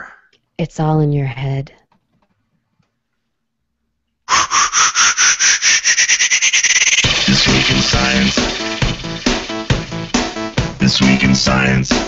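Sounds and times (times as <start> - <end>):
rapid electronic pulses rising: 4.3 - 12.0.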